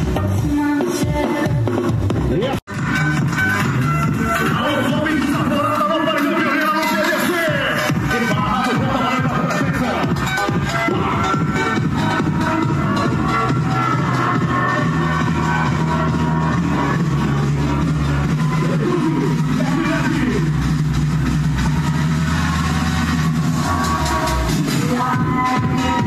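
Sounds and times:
bass-heavy music through car speakers: 0.0s - 26.0s.

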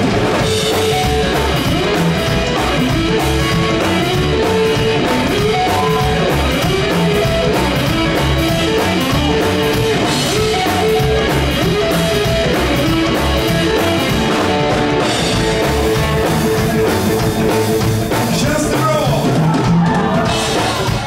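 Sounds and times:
drum kit: 0.0s - 21.0s
electric guitar melody: 0.0s - 21.0s
slapped upright bass: 0.0s - 21.0s.

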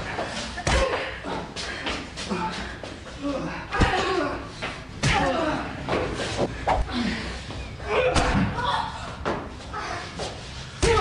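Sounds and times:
people shouting and grunting: 0.0s - 11.0s.

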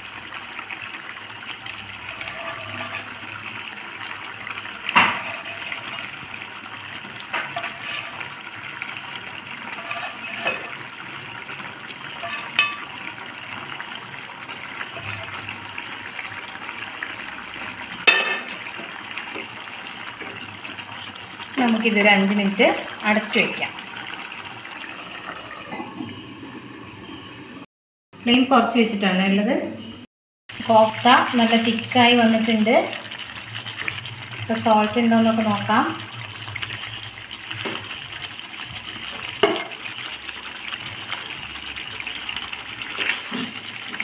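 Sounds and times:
gravy bubbling in a pan: 0.0s - 27.5s, 30.5s - 44.0s
knocks against a pan: 39.4s - 39.7s.

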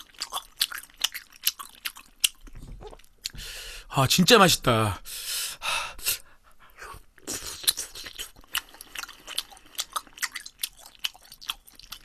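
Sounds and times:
wet chewing mouth sounds: 0.0s - 3.4s, 7.2s - 12.0s.

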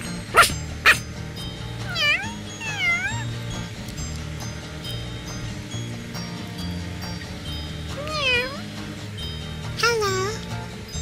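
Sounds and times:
background music: 0.0s - 11.0s
dog barks: 0.2s - 1.0s.

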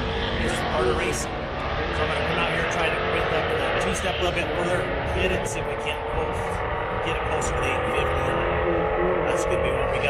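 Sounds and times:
vehicle engine noise: 0.0s - 10.0s
man talking: 0.3s - 10.0s.

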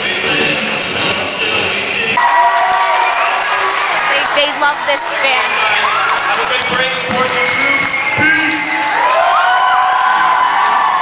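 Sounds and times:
audience cheering: 2.2s - 11.0s.

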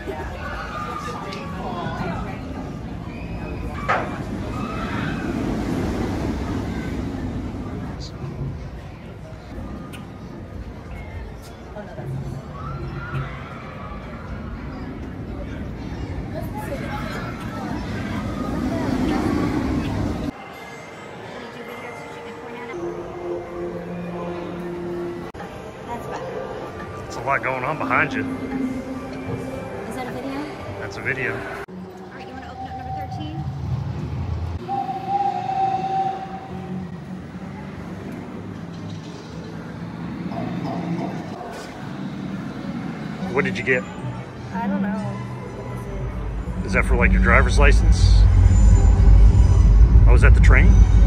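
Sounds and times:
faint voices: 0.0s - 33.8s, 35.9s - 51.0s
whistle-like tone: 32.4s - 33.6s, 34.6s - 36.8s
low hum: 45.2s - 51.0s
loud low rumble: 45.6s - 51.0s.

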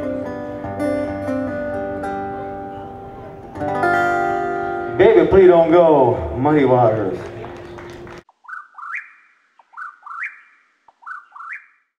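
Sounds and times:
bird-like whistled call: 8.4s - 11.9s.

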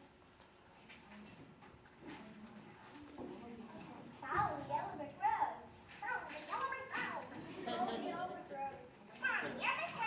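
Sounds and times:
children chattering: 2.4s - 10.0s.

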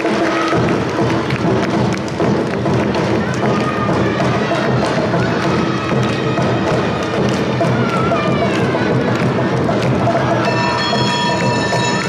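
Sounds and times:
taiko drums beating: 0.0s - 12.0s.

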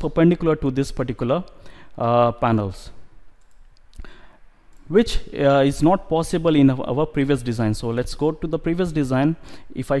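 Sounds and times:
computer mouse click: 3.4s - 4.1s, 4.7s - 5.0s.

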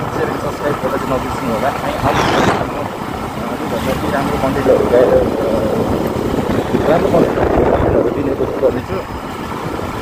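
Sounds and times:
motorcycle engine and wind rumble: 0.0s - 10.0s.

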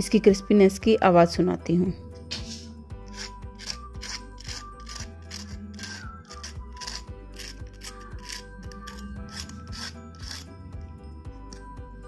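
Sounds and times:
background music: 0.0s - 12.0s
fork scraping crisp crust: 3.1s - 10.5s.

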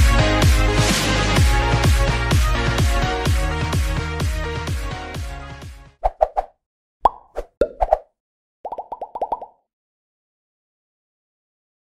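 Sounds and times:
short popping sound effects: 6.0s - 8.1s, 8.7s - 9.6s.

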